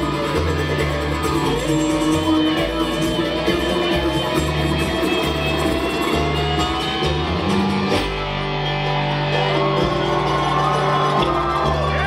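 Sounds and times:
acoustic guitar: 0:00.0 - 0:12.0
banjo: 0:00.0 - 0:12.0
slide dobro: 0:00.0 - 0:12.0
upright bass: 0:00.0 - 0:12.0.

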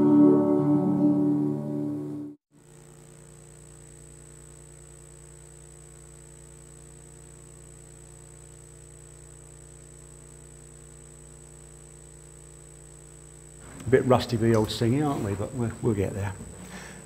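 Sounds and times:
faint electrical hum: 0:00.0 - 0:17.0.

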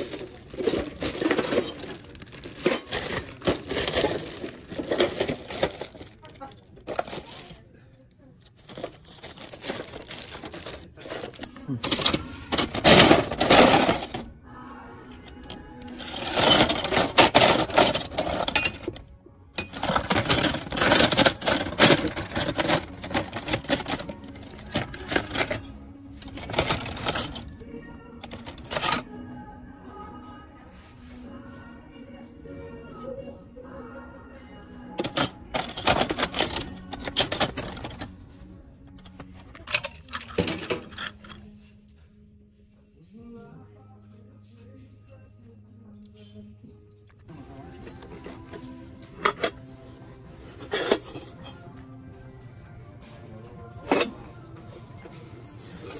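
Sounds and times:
metal knives clattering in plastic tub: 0:00.0 - 0:07.6, 0:08.6 - 0:14.3, 0:15.5 - 0:19.0, 0:19.6 - 0:27.5, 0:28.2 - 0:29.1, 0:35.0 - 0:38.2, 0:39.0 - 0:41.7, 0:48.2 - 0:49.6, 0:50.6 - 0:51.7, 0:53.8 - 0:54.3.

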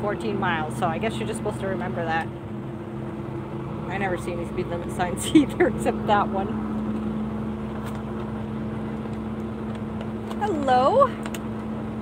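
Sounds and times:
road noise: 0:00.0 - 0:12.0
steady low hum: 0:00.0 - 0:12.0
truck diesel engine droning: 0:00.0 - 0:12.0.

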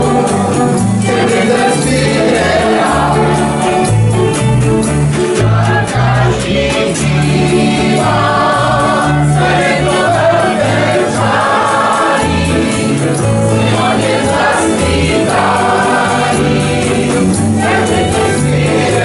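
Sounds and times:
fiddle and guitar: 0:00.0 - 0:19.0
group of voices singing: 0:00.0 - 0:19.0.

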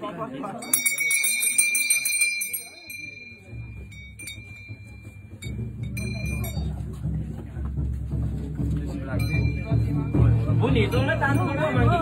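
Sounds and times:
hand bell ringing: 0:00.5 - 0:06.9, 0:09.2 - 0:12.0.

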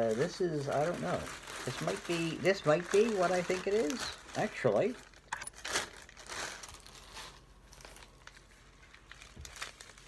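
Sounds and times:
plastic mailer bag crinkling: 0:00.0 - 0:10.0.

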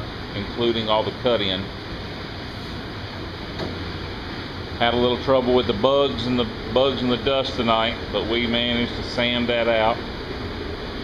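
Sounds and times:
ventilation fan whirring: 0:00.0 - 0:11.0.

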